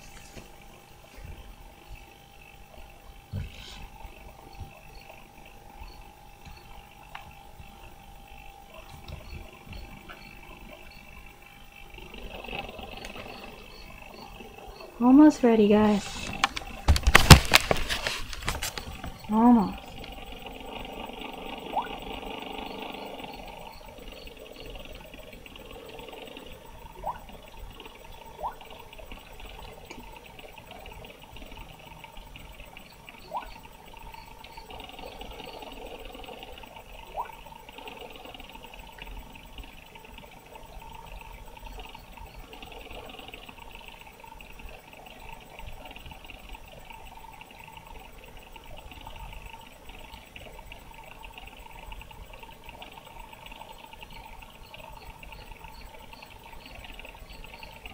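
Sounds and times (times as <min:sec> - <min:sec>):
computer fan humming: 0:00.0 - 0:57.9.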